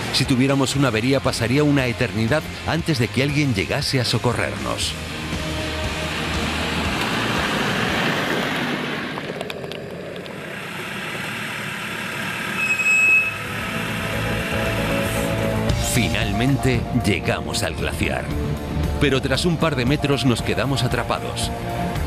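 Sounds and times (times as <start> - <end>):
music: 0.0 - 8.5, 13.2 - 22.0
brief high tone: 12.6 - 14.0.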